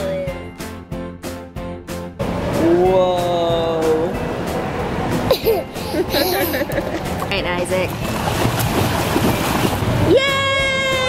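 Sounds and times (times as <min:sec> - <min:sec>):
pool water splashing: 0:05.6 - 0:11.0.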